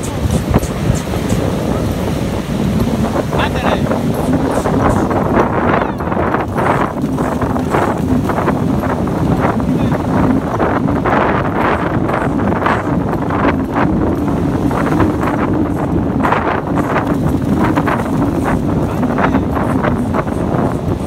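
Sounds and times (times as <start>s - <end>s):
surf: 0.0s - 21.0s
wind buffeting the microphone: 0.0s - 21.0s.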